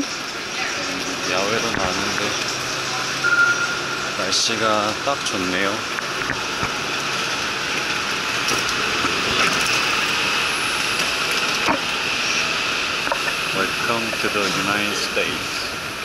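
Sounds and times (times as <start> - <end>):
high-pitched hum: 0.0 - 16.0
machinery rushing drone: 0.0 - 16.0.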